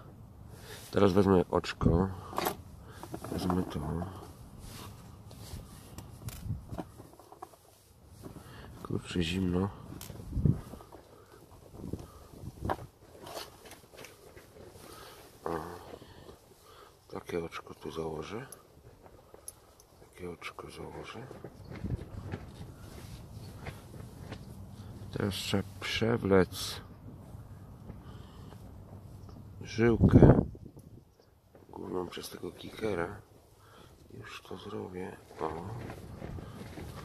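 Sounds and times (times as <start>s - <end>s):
fishing tackle clicks and rustles: 5.3s - 7.8s, 9.9s - 16.6s.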